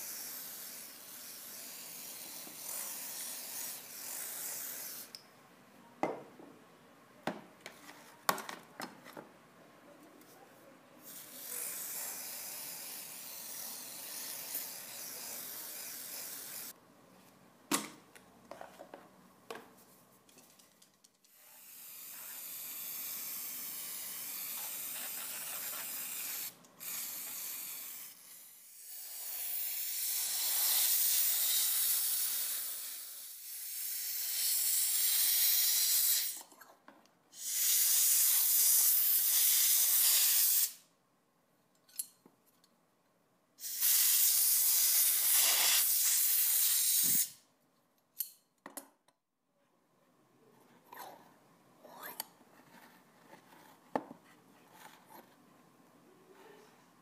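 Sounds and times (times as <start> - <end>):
compressed air blow gun hissing: 21.6 - 36.4, 37.4 - 40.8, 43.6 - 47.4.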